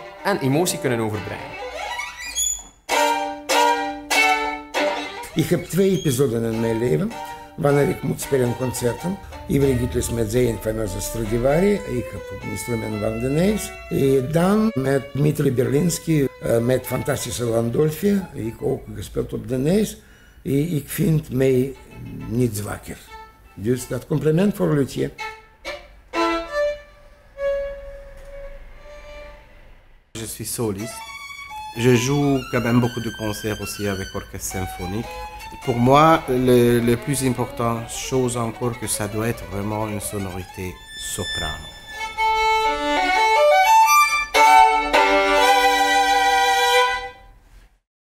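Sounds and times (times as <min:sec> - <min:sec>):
solo violin bowed: 0:00.0 - 0:47.4.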